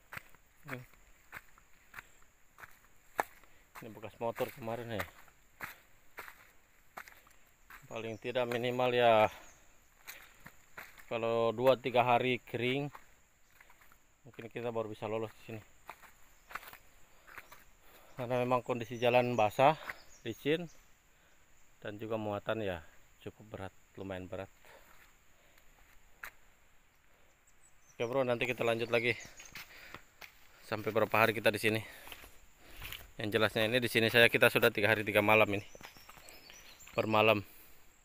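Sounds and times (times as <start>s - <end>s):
footsteps on stony mud track: 0.0s - 20.2s, 24.5s - 27.3s, 28.0s - 37.8s.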